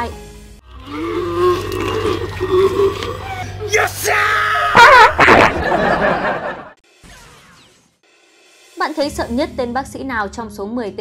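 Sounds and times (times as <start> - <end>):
eerie vocal sounds: 0.6 - 4.1.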